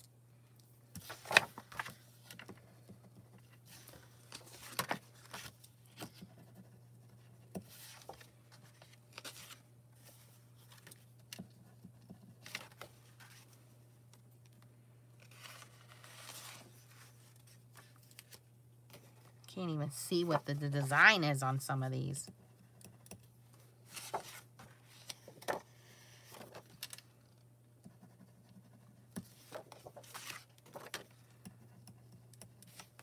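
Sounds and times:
paper rustling and shuffling: 0:00.9 - 0:06.6, 0:07.6 - 0:13.6, 0:15.2 - 0:19.4, 0:23.5 - 0:27.3, 0:29.1 - 0:31.2.

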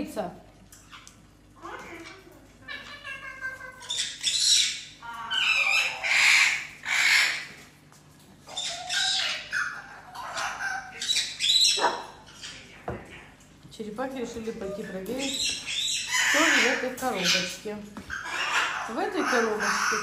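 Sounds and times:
parrot squawking: 0:00.8 - 0:07.7, 0:08.4 - 0:12.8, 0:14.7 - 0:20.0.

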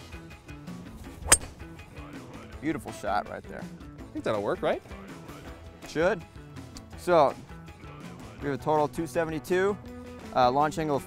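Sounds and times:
background music: 0:00.0 - 0:11.0
golf club striking ball: 0:01.2 - 0:01.6.

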